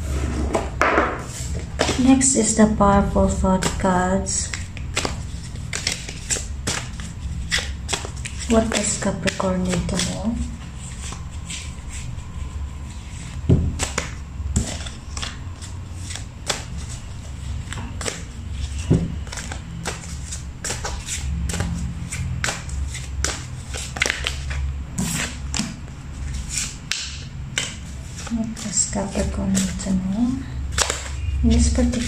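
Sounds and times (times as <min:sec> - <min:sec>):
low steady hum: 0:00.0 - 0:32.0
cards being shuffled: 0:03.3 - 0:32.0.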